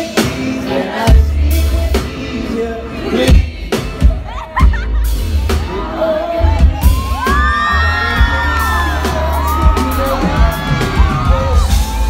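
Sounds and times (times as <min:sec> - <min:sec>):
live band music with heavy bass: 0:00.0 - 0:12.0
crowd cheering and whooping: 0:04.0 - 0:12.0.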